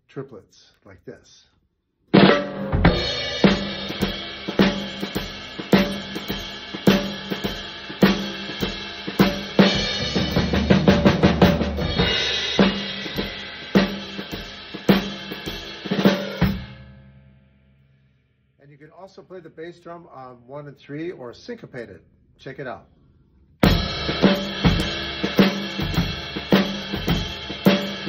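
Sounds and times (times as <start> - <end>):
drum fill: 2.2 - 16.8, 23.6 - 28.0
drum kit shuffle groove: 2.2 - 16.8, 23.6 - 28.0
bass drum: 2.2 - 16.9, 23.6 - 28.0
ride cymbal: 3.0 - 16.6, 23.6 - 28.0
hi-hat: 3.2 - 16.4.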